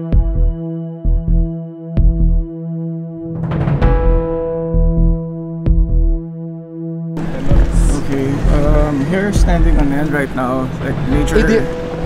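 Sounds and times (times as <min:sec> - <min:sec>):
synthesizer drone: 0:00.0 - 0:12.0
low double thump: 0:03.3 - 0:06.1.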